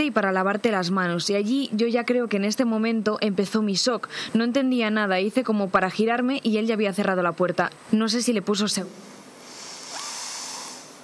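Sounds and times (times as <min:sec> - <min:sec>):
soft breathy hiss: 0:04.0 - 0:04.5, 0:08.9 - 0:11.0.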